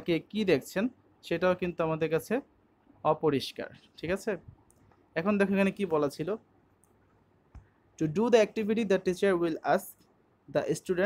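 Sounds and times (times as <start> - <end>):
person speaking: 0.0 - 6.5, 7.5 - 11.0.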